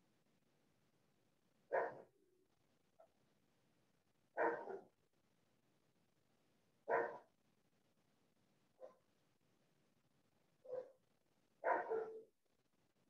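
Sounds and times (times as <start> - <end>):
dog barking: 1.7 - 2.1, 4.4 - 5.0, 6.9 - 7.3, 8.8 - 9.1, 10.6 - 11.0, 11.6 - 12.3.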